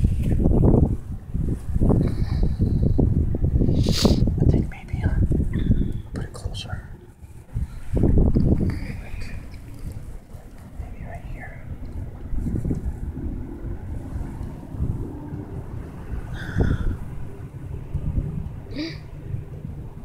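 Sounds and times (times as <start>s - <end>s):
wind buffeting microphone: 0.0s - 20.0s.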